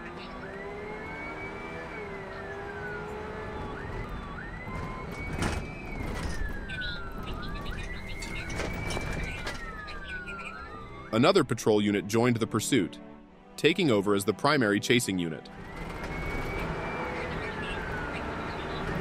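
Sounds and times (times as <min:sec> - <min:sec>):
police siren wailing: 0:00.0 - 0:11.6, 0:15.5 - 0:19.0
car engine and road noise: 0:00.0 - 0:19.0.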